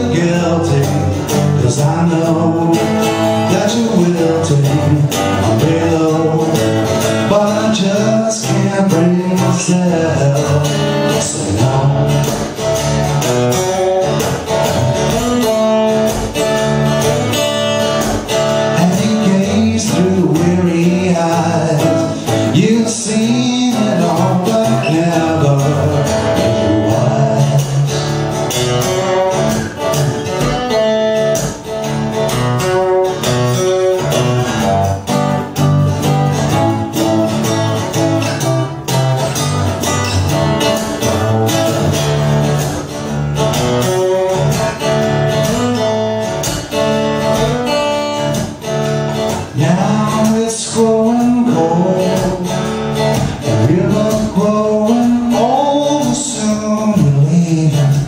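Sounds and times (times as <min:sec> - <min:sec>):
acoustic guitar strummed: 0:00.0 - 0:58.0.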